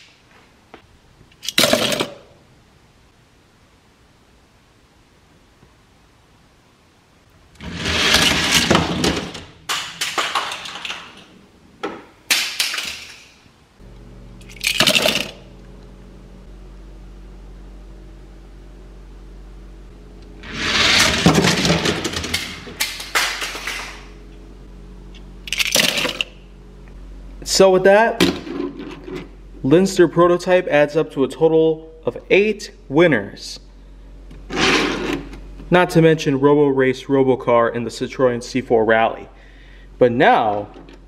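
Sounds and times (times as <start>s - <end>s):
toy cars rolling on plastic track: 7.6s - 9.2s
low hum: 13.5s - 41.0s.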